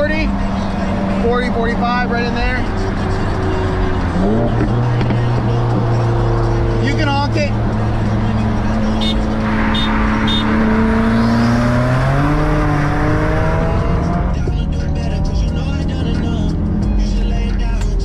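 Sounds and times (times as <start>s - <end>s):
car engine at full throttle: 0.0s - 18.0s
road noise: 0.0s - 18.0s.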